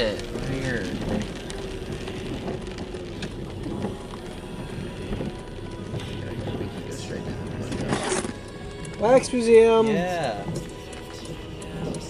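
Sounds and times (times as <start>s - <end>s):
engine and tyre hum: 0.0s - 12.0s
faint music: 0.0s - 12.0s
rain on windshield: 0.0s - 12.0s.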